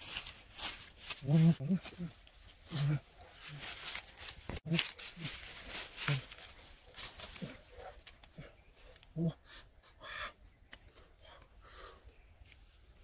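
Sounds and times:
man grunting and murmuring: 0:01.2 - 0:03.6.

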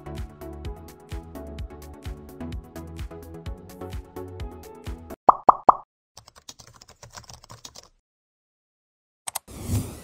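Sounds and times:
rising pop sound effects: 0:05.3 - 0:05.8
computer keyboard typing: 0:06.2 - 0:08.0.

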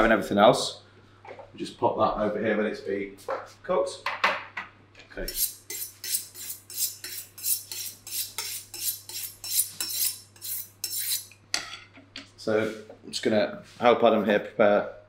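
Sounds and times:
knife scraping on honing steel: 0:05.2 - 0:11.8.

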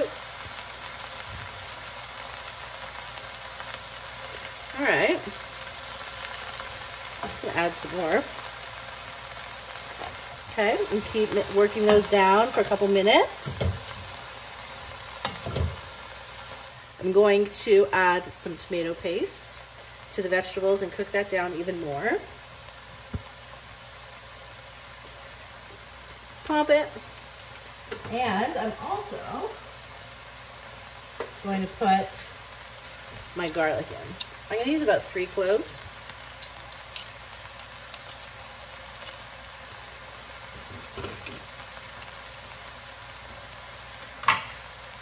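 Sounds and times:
vegetables sizzling in a pot: 0:00.0 - 0:45.0.

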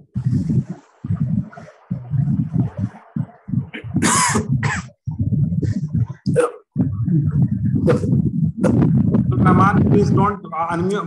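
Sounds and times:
low uneven rumble: 0:00.0 - 0:11.0
harsh cough-like bursts: 0:03.8 - 0:05.0.

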